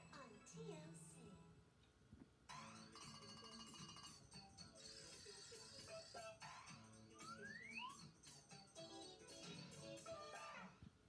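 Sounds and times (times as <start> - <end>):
faint jingle music from television: 0.0 - 11.0.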